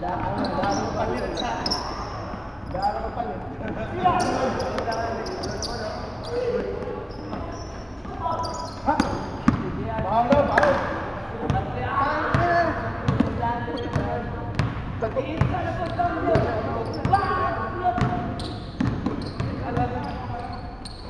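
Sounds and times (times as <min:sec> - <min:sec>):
basketball bouncing on wooden floor: 0:13.1 - 0:17.2, 0:18.0 - 0:20.2.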